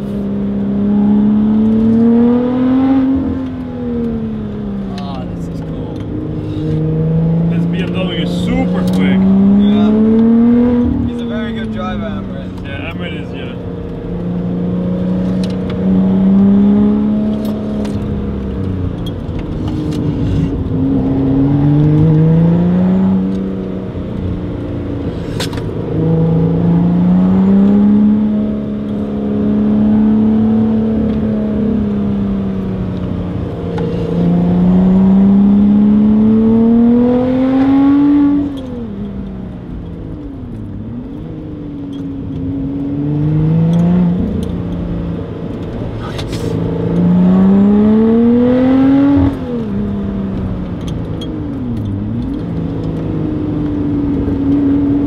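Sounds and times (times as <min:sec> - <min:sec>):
sports car engine revving: 0:00.0 - 0:55.0.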